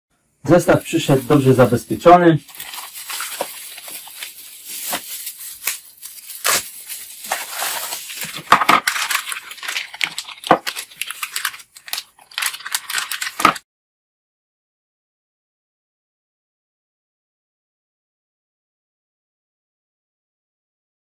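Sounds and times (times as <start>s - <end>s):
bubble wrap and plastic crinkling: 0.5s - 13.6s.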